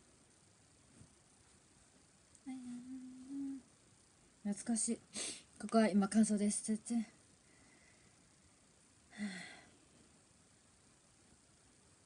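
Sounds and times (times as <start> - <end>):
woman humming: 2.4 - 3.7, 9.1 - 9.7.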